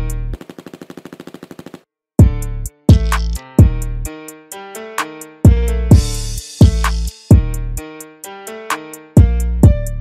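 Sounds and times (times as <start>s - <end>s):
automatic gunfire burst: 0.4s - 1.8s
trap beat with bass: 2.2s - 3.9s, 5.5s - 7.6s.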